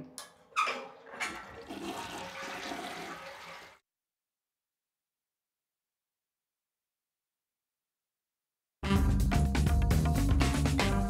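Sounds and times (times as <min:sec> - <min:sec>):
toilet flushing: 0:00.5 - 0:03.8.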